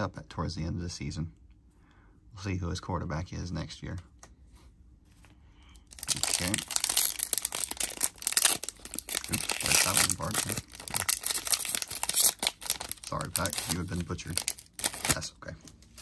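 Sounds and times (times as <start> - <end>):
foil wrapper tearing and crinkling: 5.9 - 15.3.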